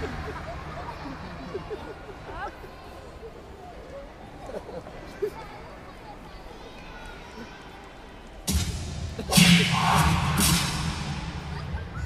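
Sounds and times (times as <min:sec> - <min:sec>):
audience murmuring: 0:00.0 - 0:12.0.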